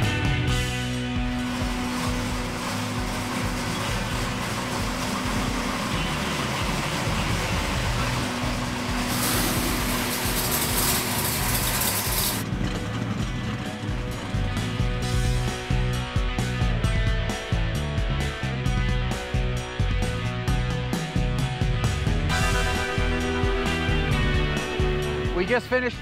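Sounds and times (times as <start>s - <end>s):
car engine rumbling: 0.0s - 17.4s.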